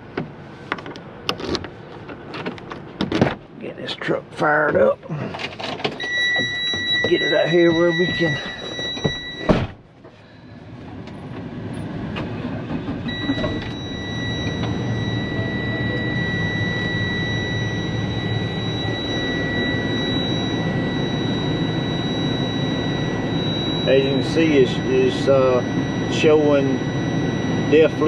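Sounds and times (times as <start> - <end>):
diesel engine running: 0.0 - 28.0
high-pitched warning buzzer: 6.0 - 9.6, 13.1 - 28.0.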